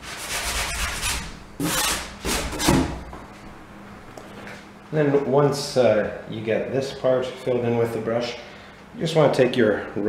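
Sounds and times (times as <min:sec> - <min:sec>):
sanding sponge rubbing wood: 0:00.0 - 0:02.6.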